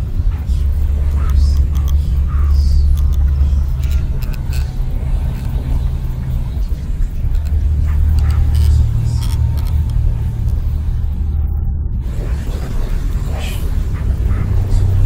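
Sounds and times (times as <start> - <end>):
deep low synth drone: 0.0 - 15.0
clicks and crackles: 1.0 - 11.1.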